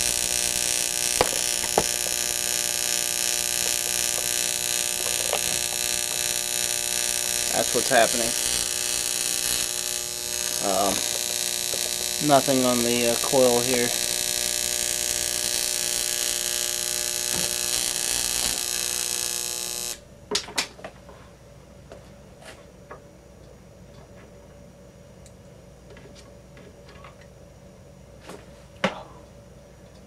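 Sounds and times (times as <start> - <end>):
high-voltage arc buzzing: 0.0 - 20.3.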